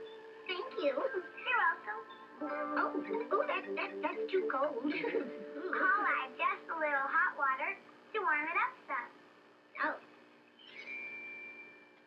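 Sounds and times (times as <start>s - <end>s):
thin high tone: 10.6s - 12.0s.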